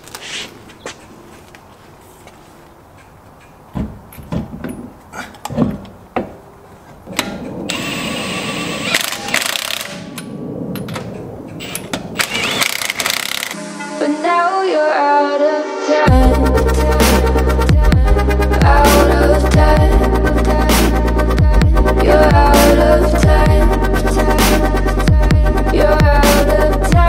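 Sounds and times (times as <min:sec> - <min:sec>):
cordless power tool whirring: 0:07.7 - 0:10.0, 0:11.6 - 0:13.6
electronic music: 0:13.5 - 0:27.0.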